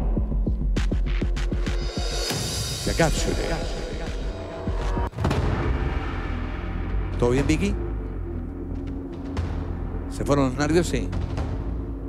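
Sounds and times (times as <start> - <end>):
game show background music: 0.8 - 8.2, 9.2 - 12.0
deep boom hit: 2.9 - 7.8.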